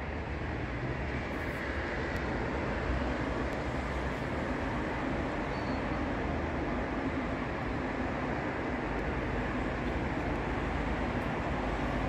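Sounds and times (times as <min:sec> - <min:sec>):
distant city rumble and hiss: 0:00.0 - 0:12.0.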